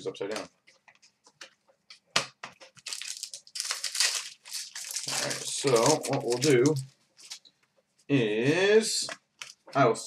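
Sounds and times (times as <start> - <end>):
foil wrappers tearing and crinkling: 2.8 - 7.4.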